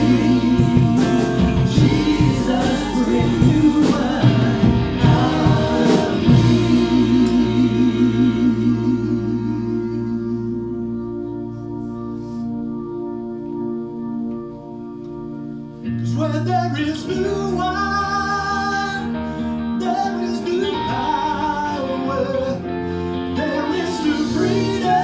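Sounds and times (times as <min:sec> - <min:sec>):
people singing: 0:00.0 - 0:11.2, 0:19.8 - 0:25.0
held keyboard chord: 0:00.0 - 0:25.0.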